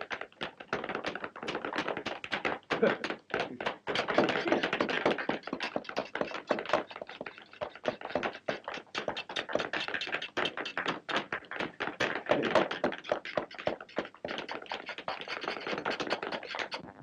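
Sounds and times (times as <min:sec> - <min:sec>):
hammers tapping on shoes: 0:00.0 - 0:16.8.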